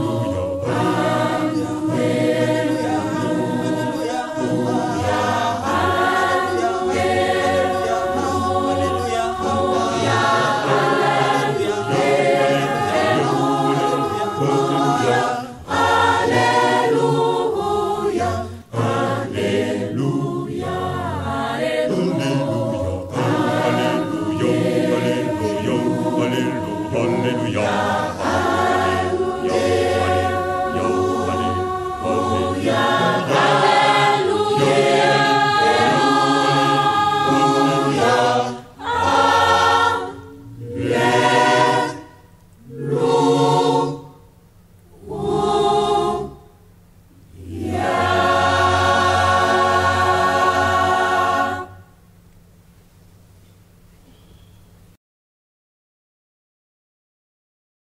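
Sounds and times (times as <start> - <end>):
choir singing gospel song: 0.0 - 44.3, 44.9 - 52.3.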